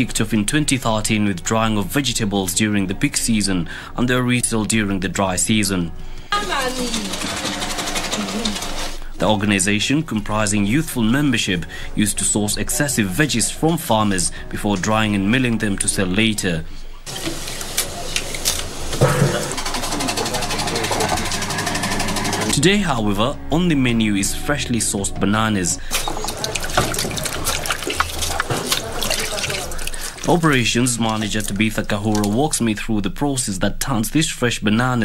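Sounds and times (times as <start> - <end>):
small machine rattling: 6.4 - 9.0, 19.0 - 22.6
small engine running with ticking: 19.2 - 22.6.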